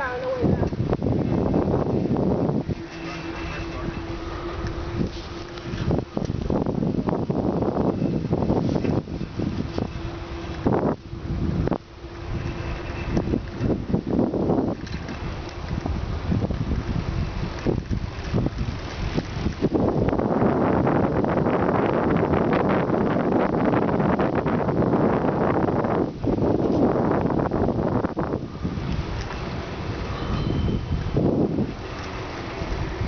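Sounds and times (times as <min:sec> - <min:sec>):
bicycle rumble over pavement: 0:00.0 - 0:33.0
wind buffeting microphone: 0:00.0 - 0:33.0.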